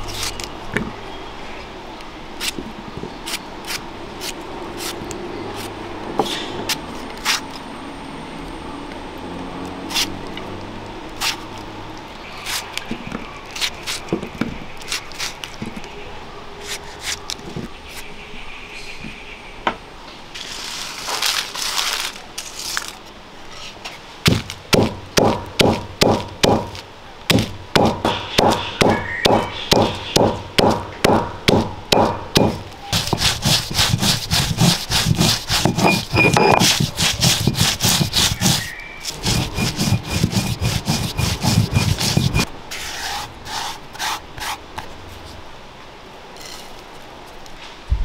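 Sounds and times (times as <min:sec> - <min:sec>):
chillies rustling: 0:11.1 - 0:16.0, 0:20.3 - 0:24.7, 0:32.5 - 0:45.4
stone roller crushing chillies: 0:32.4 - 0:42.5.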